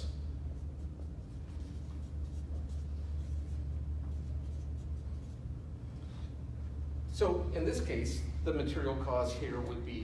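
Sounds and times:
steady low hum: 0:00.0 - 0:10.0
marker scratching on whiteboard: 0:00.5 - 0:05.5.

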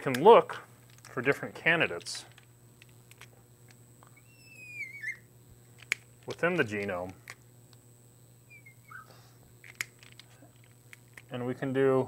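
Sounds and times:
marker squeaking on glass: 0:04.2 - 0:05.3, 0:08.5 - 0:09.1.

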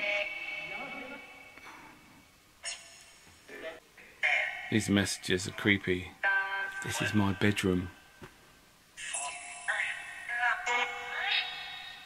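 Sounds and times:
synthetic voice fragments with echo: 0:00.0 - 0:01.5, 0:03.5 - 0:08.0, 0:09.0 - 0:12.0.

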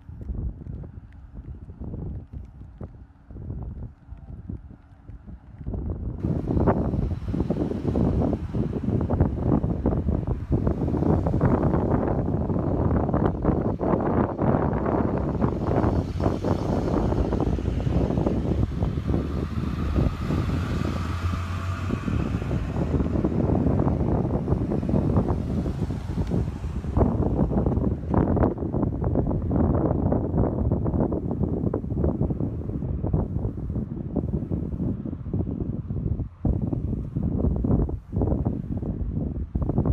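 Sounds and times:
vehicle engine running low: 0:00.0 - 0:39.9
wind buffeting microphone: 0:00.0 - 0:39.9.

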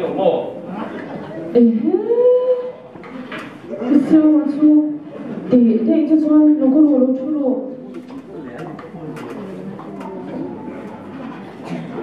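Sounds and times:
low indistinct voices: 0:00.0 - 0:12.0.

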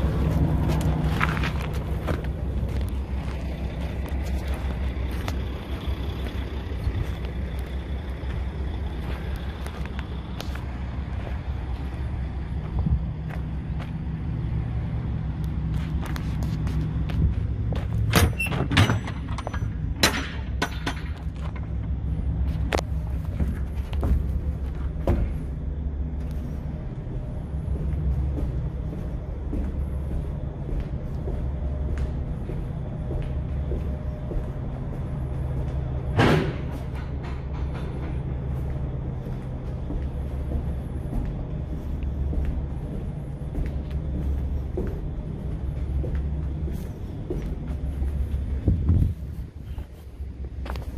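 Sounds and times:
steady low rumble: 0:00.0 - 0:50.9.

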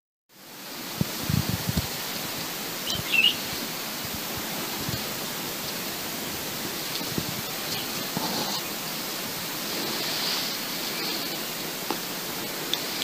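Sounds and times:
outdoor background hiss: 0:00.3 - 0:13.0
bird chirp: 0:02.8 - 0:03.5.

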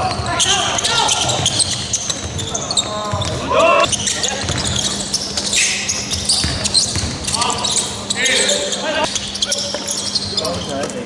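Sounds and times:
basketball dribbling: 0:00.0 - 0:08.2
players calling out: 0:00.0 - 0:10.9
sneaker squeaks: 0:00.0 - 0:11.0.

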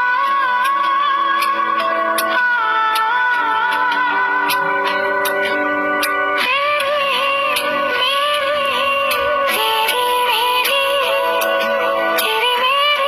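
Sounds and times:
woman singing: 0:00.0 - 0:05.1, 0:06.4 - 0:13.0
backing track with beat: 0:00.0 - 0:13.0.

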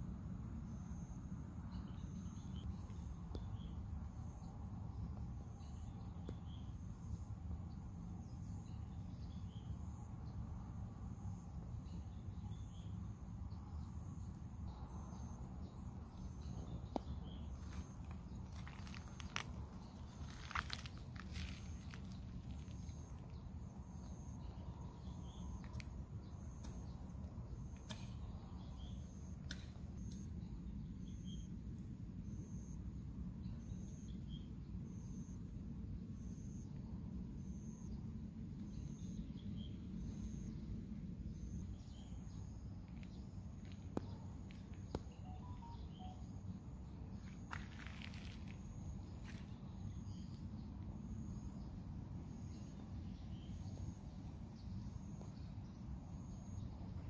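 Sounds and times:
bird chirps: 0:44.9 - 0:46.4
faint high repeating chirp: 0:45.0 - 0:46.5.

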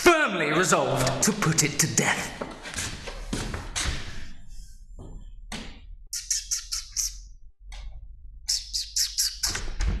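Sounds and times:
man making lip sounds: 0:06.1 - 0:07.3.

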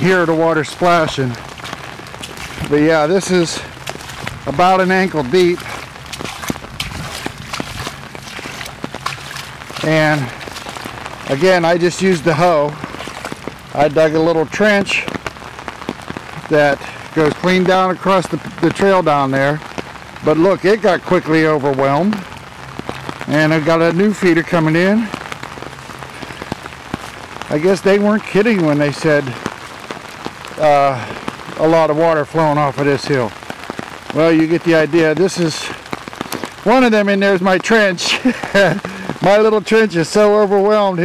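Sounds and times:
footsteps splashing through water: 0:00.0 - 0:19.0, 0:19.6 - 0:31.9, 0:33.5 - 0:39.5
rain ticking: 0:00.0 - 0:41.0.

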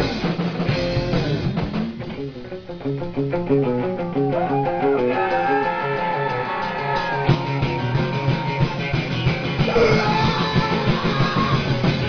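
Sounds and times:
distorted electric guitar: 0:00.0 - 0:12.0
light drumming: 0:00.0 - 0:12.0.

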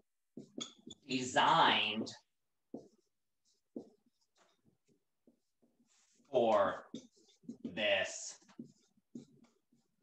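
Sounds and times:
pen writing on paper: 0:00.3 - 0:01.3, 0:02.6 - 0:07.7, 0:08.4 - 0:10.0.

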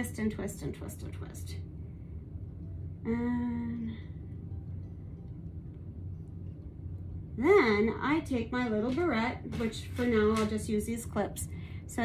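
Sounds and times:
low steady hum: 0:00.0 - 0:12.0.

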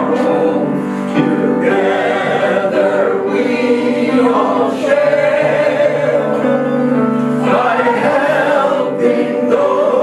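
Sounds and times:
group of men and women singing: 0:00.0 - 0:10.0.

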